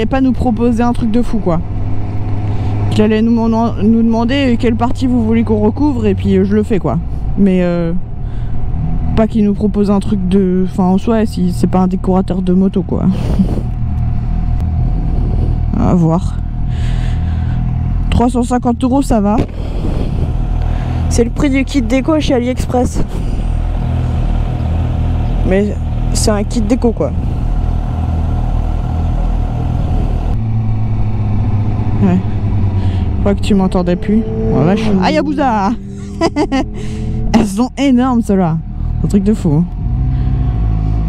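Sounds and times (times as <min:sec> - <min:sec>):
motorcycle engine at road speed: 0:00.0 - 0:41.0
motorcycle engine idling: 0:20.2 - 0:39.1.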